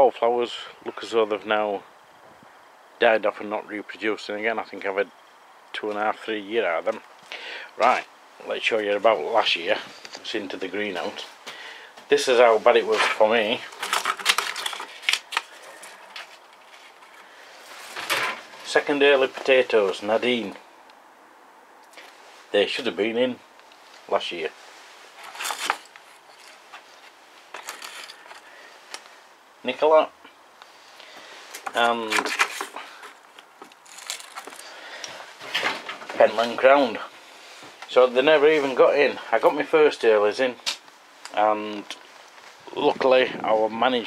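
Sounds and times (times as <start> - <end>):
faint hiss: 0.0 - 13.8, 21.8 - 44.0
handling clicks and rustles: 12.7 - 20.1, 23.5 - 29.2, 31.0 - 36.8.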